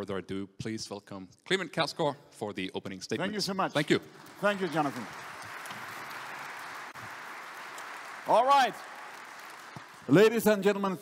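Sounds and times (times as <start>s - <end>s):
audience applauding: 3.8s - 11.0s.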